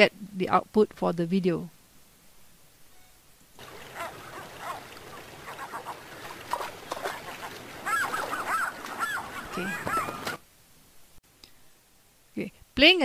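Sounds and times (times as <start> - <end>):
gulls calling: 3.6 - 10.4
river water rushing: 3.6 - 10.4.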